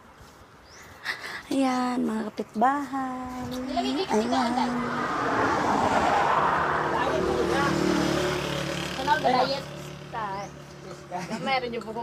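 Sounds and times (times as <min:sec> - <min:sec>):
vehicle passing on concrete road: 0:02.8 - 0:12.0.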